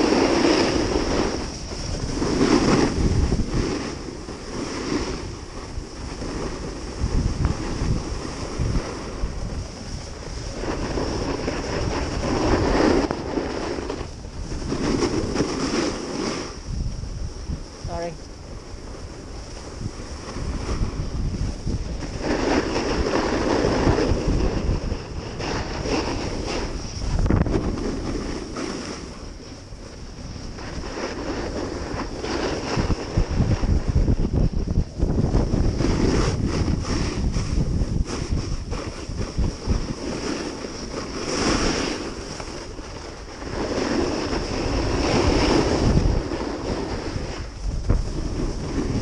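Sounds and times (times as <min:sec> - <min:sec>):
skis scraping over snow: 0:00.0 - 0:49.0
wind buffeting microphone: 0:00.0 - 0:49.0.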